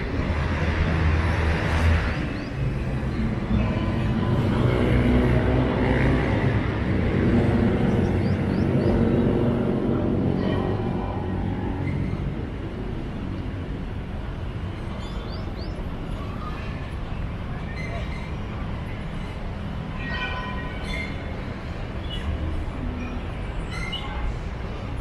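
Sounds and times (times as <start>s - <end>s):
heavy vehicle engine: 0.0s - 19.9s
city traffic rumble: 0.0s - 25.0s
birds chirping: 7.7s - 9.4s, 14.9s - 16.0s.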